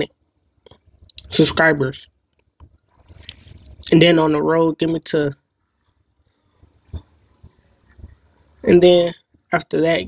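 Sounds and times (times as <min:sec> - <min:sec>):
man talking: 0:01.2 - 0:02.1, 0:03.8 - 0:05.4, 0:08.6 - 0:10.0.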